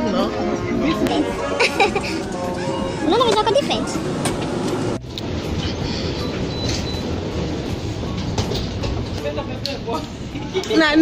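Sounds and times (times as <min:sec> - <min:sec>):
aircraft cabin noise: 0:00.0 - 0:11.0
steady rushing rumble: 0:00.3 - 0:11.0.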